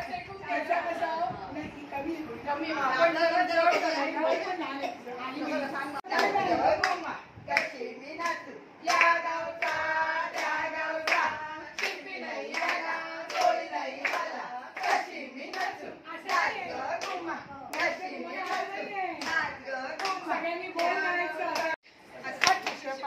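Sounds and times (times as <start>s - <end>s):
women singing: 2.7s - 23.0s
women clapping in steady beat: 6.1s - 23.0s.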